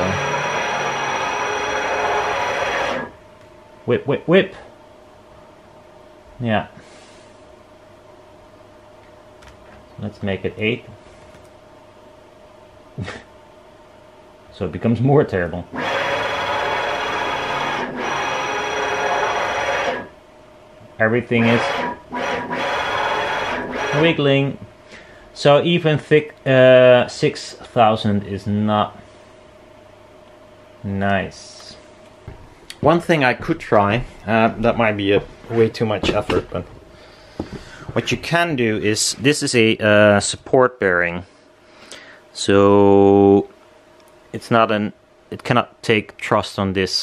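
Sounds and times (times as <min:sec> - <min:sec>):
ball screw motor whine: 0:00.0 - 0:03.2, 0:15.7 - 0:20.1, 0:21.1 - 0:24.4
faint steady hum: 0:00.0 - 0:47.0.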